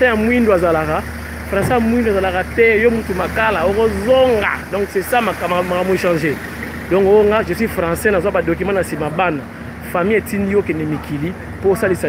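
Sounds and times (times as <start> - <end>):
car engine humming: 0.0 - 12.0
person talking: 0.0 - 12.0.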